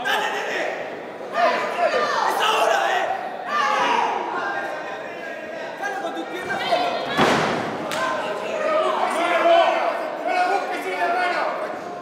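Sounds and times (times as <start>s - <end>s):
people shouting: 0.0s - 4.7s.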